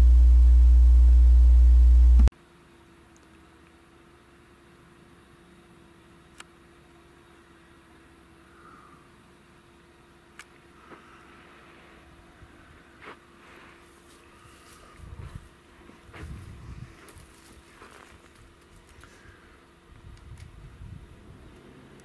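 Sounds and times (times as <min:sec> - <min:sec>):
steady low hum: 0:00.0 - 0:22.0
footsteps through dry grass: 0:12.9 - 0:19.4
wind buffeting microphone: 0:15.0 - 0:15.5, 0:16.1 - 0:17.1, 0:20.0 - 0:21.6.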